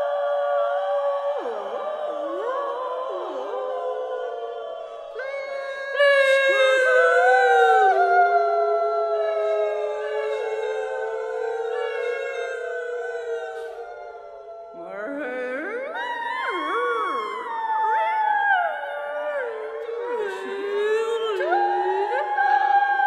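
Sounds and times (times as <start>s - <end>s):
women singing together: 0.0s - 3.1s, 14.7s - 23.0s.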